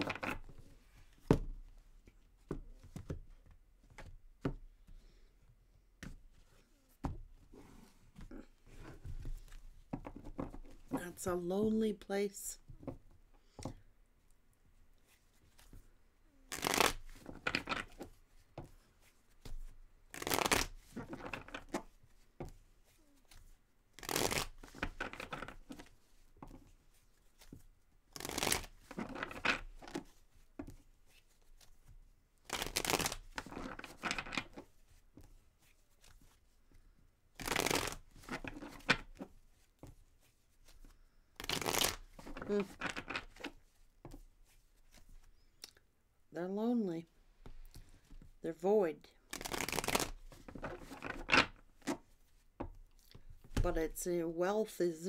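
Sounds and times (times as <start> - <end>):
cards riffle-shuffled: 0.0 - 0.8, 16.5 - 26.7, 27.3 - 36.4, 37.4 - 45.3, 49.3 - 52.4.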